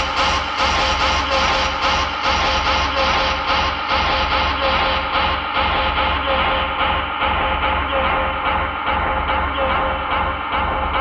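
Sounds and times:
industrial techno music: 0.0 - 11.0.

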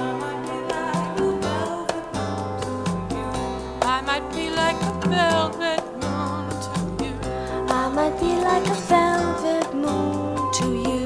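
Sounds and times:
vocal song with instruments: 0.0 - 11.0.

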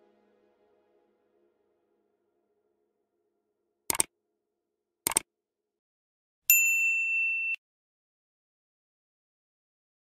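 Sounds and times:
high bell ding: 6.5 - 7.6.

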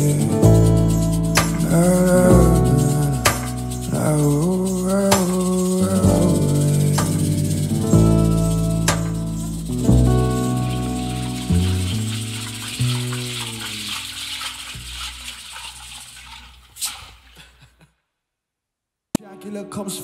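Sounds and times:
upright bass: 0.0 - 14.1
acoustic guitar chords: 0.0 - 14.9
shaker rattling: 0.0 - 16.9.

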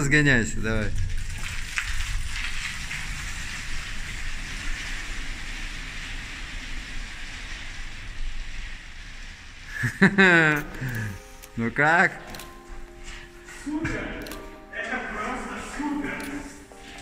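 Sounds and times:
studded tyres rolling on concrete: 0.0 - 10.2.

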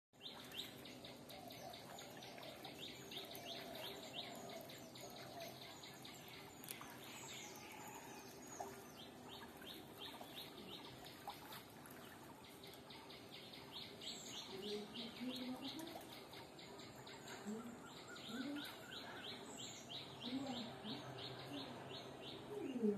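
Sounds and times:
birds chirping: 0.2 - 22.9.

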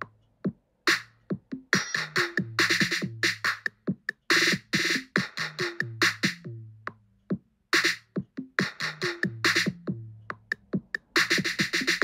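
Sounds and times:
drum machine kick and clap: 0.0 - 12.0
layered electronic instruments: 0.0 - 12.0
bass line: 5.4 - 7.0, 8.4 - 10.6.

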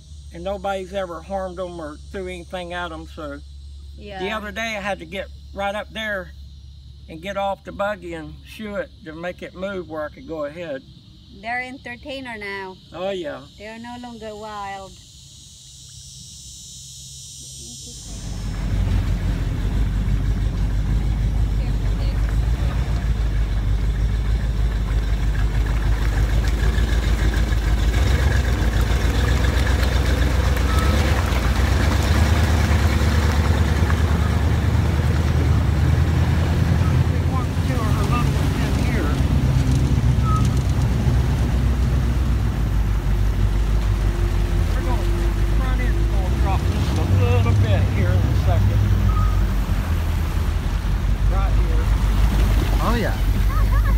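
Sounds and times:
vehicle engine droning: 15.1 - 53.9.

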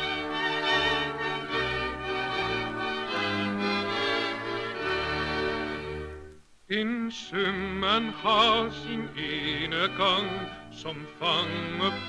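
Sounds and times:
orchestra playing full chords: 0.0 - 6.4.

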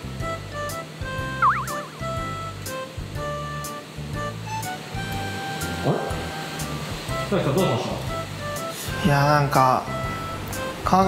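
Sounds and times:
background music with steady beat: 0.0 - 11.0
warbling sound effect: 1.4 - 2.4.

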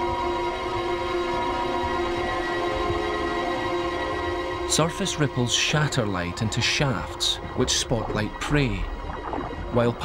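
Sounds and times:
dark tense drone chord: 0.0 - 10.0.

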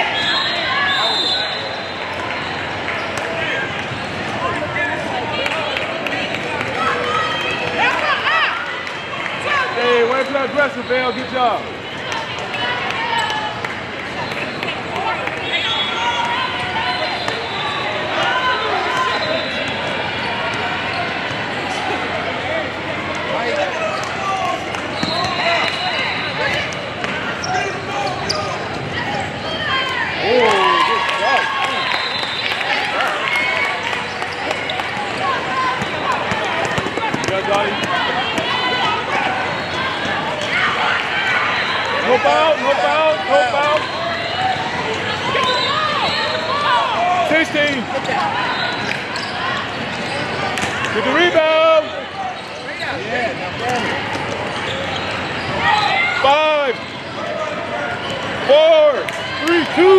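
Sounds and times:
chatter of many voices: 0.0 - 59.9
basketball bouncing on court: 35.7 - 38.6.

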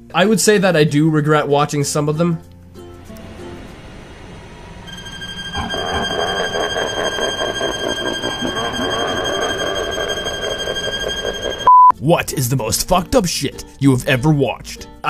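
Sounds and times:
high-pitched whine: 2.8 - 11.7
rough mid-range noise: 2.9 - 11.7
censor bleep: 11.6 - 11.9.

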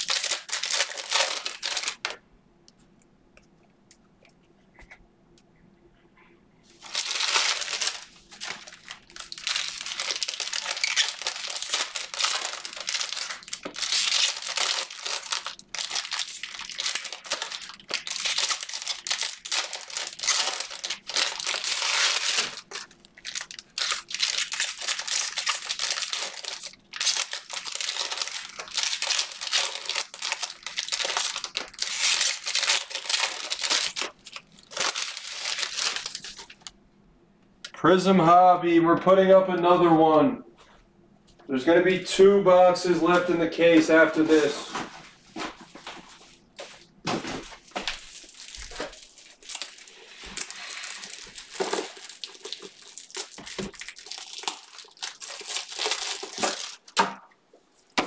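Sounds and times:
foil wrappers crinkling and tearing: 0.0 - 2.2, 6.8 - 36.7, 44.0 - 57.1.

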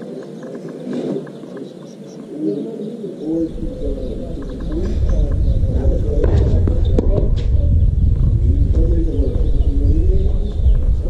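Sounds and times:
doves cooing: 0.0 - 11.0
low rumble: 3.6 - 11.0.

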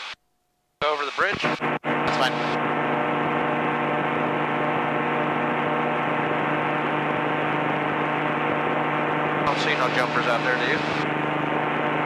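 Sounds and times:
electrical hum and buzz: 1.2 - 12.0.

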